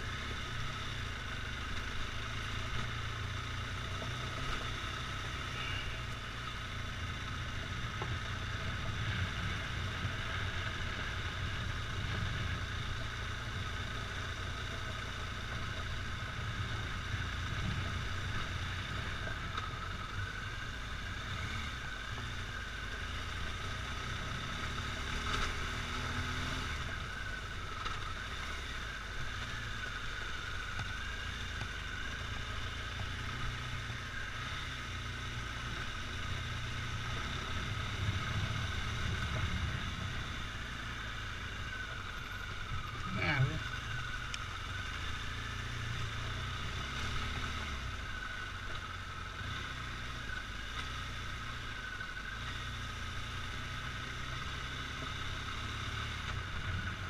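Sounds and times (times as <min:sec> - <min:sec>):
motorcycle engine running: 0:00.0 - 0:57.0.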